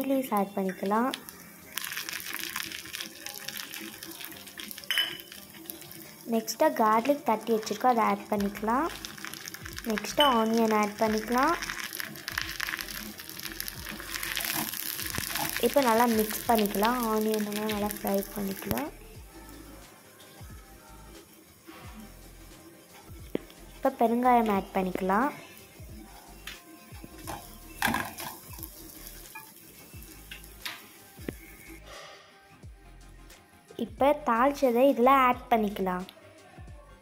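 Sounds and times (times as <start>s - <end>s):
shallots sizzling in hot oil: 0.0s - 31.8s.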